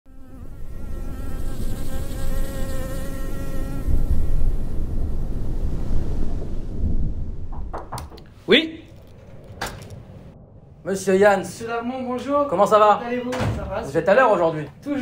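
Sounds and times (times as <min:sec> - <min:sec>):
bee buzzing: 0:00.1 - 0:04.8
deep rumble: 0:03.8 - 0:13.8.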